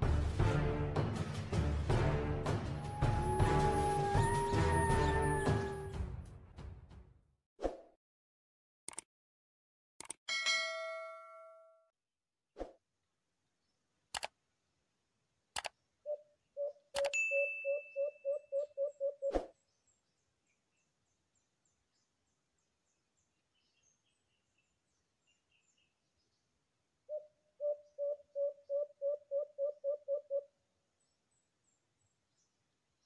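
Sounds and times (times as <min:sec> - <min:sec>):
sharp metallic click: 0:08.9 - 0:09.1, 0:10.0 - 0:10.2, 0:14.2 - 0:14.4
dove cooing: 0:16.1 - 0:19.3, 0:27.1 - 0:30.5.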